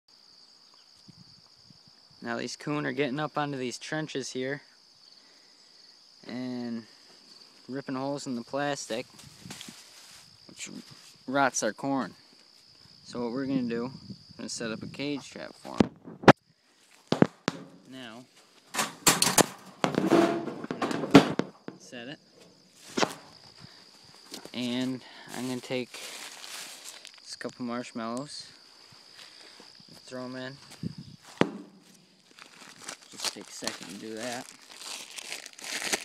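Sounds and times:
knocks on wire-mesh cage: 0:17.1 - 0:17.8, 0:18.8 - 0:21.8, 0:31.4 - 0:31.8
plastic bag crinkling: 0:25.9 - 0:27.2, 0:32.2 - 0:36.0.

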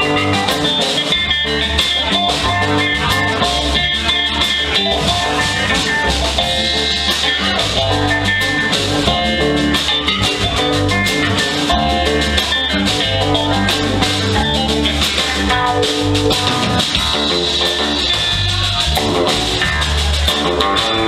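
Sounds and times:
drum kit: 0:00.0 - 0:21.0
electric bass: 0:00.0 - 0:21.0
electric guitar: 0:00.0 - 0:21.0
keyboard: 0:00.0 - 0:21.0.

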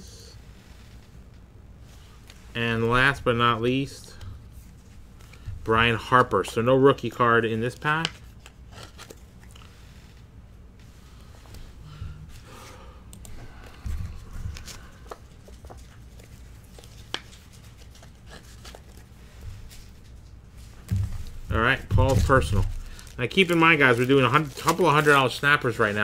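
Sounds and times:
cards rustling and sliding: 0:00.5 - 0:26.0
soft thumps: 0:20.8 - 0:22.7.

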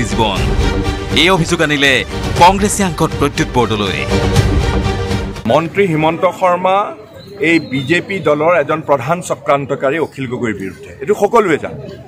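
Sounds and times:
man speaking: 0:00.0 - 0:04.3, 0:05.4 - 0:12.0.

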